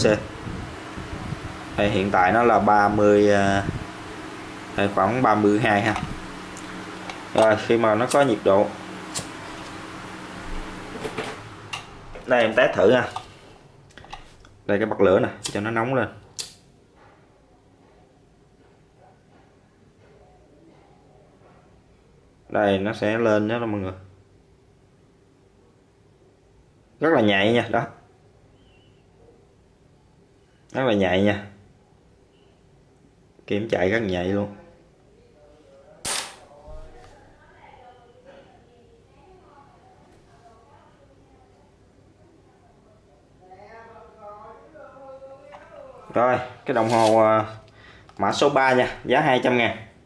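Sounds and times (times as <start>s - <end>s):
low room hum: 0.0s - 50.0s
sharp snap: 16.4s - 16.6s, 36.0s - 36.5s
faint handling sounds: 46.6s - 48.2s.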